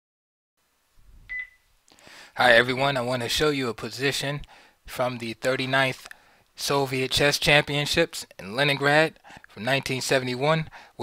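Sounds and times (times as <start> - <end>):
faint low background noise: 0.6 - 11.0
short high beep: 1.3 - 1.6.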